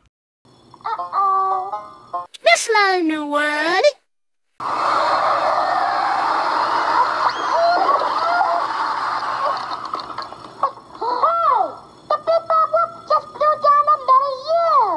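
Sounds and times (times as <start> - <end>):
high cartoon voice calling: 0.9 - 1.8, 10.6 - 14.9.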